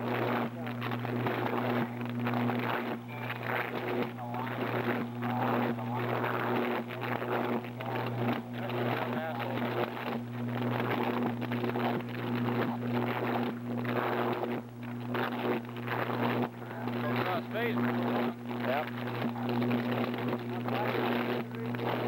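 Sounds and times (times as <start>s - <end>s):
electrical arcing buzz: 0.0s - 22.0s
electrical crackling: 0.0s - 22.0s.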